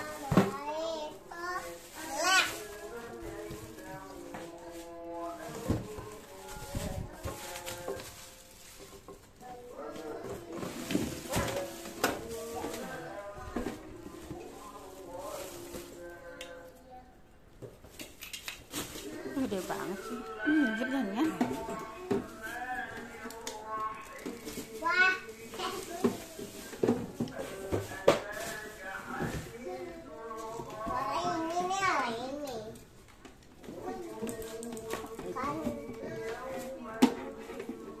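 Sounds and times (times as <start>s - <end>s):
plastic packaging rustling: 0.0s - 16.6s, 17.8s - 38.0s
children talking: 9.4s - 14.8s, 19.0s - 26.8s, 29.5s - 32.8s, 33.6s - 38.0s.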